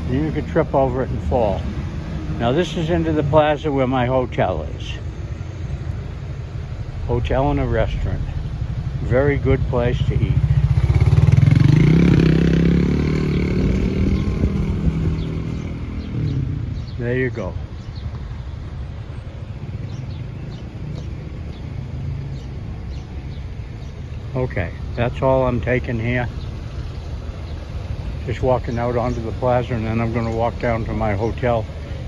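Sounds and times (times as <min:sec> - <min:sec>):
rumble of car traffic: 0:00.0 - 0:32.0
small birds chirping: 0:00.0 - 0:32.0.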